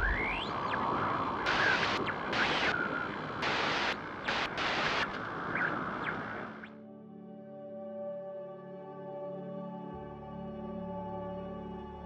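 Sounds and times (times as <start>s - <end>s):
static-like hiss bursts: 0.0s - 6.7s
steady rushing noise: 0.0s - 6.7s.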